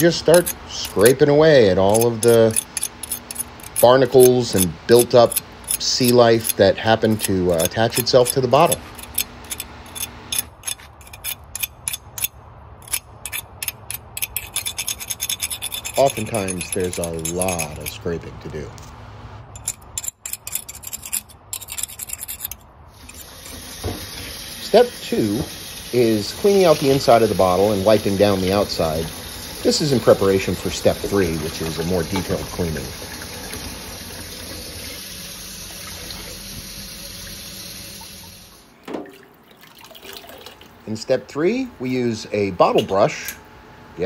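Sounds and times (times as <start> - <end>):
knife scraping glass bottle: 1.8 - 18.1, 19.6 - 23.6
tap running into a sink: 23.4 - 24.4.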